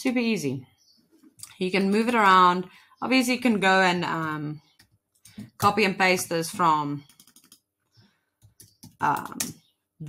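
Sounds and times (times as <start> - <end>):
computer keyboard typing: 7.0 - 7.7, 8.4 - 9.6.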